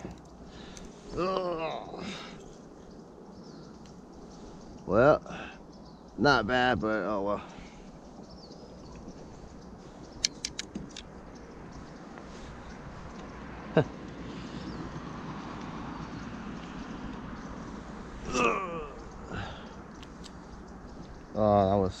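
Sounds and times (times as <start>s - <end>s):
light clicks of gear on kayak: 8.2s - 13.4s, 20.0s - 21.2s
sharp click: 10.2s - 11.1s
brief wordless vocal sound: 18.2s - 19.7s.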